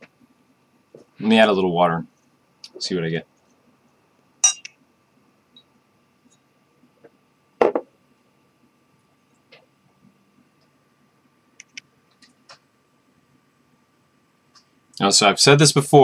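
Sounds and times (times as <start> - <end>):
glass pourer clinking against glass: 4.4 - 4.7
glass set down on desk: 7.6 - 7.9
faint clicks: 11.6 - 12.7.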